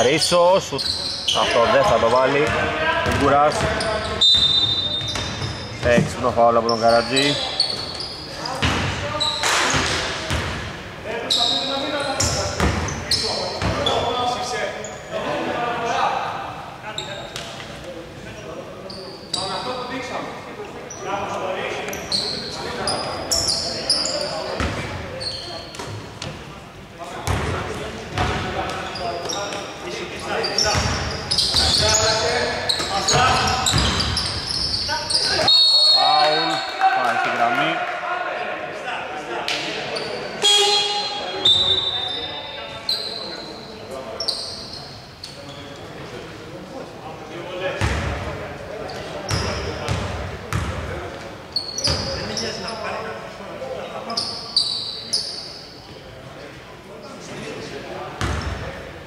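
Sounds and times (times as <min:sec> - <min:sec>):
sneakers squeaking: 0:00.6 - 0:15.1, 0:16.9 - 0:20.1, 0:20.8 - 0:26.6, 0:27.2 - 0:36.8, 0:39.7 - 0:46.1, 0:47.8 - 0:53.2, 0:53.8 - 0:56.1, 0:58.2 - 0:58.8.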